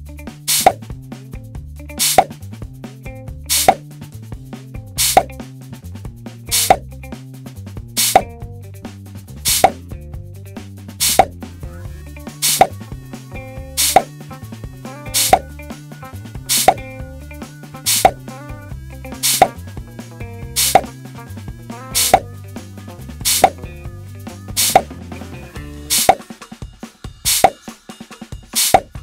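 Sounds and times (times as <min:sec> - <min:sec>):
background music with bass line: 0:00.0 - 0:27.8.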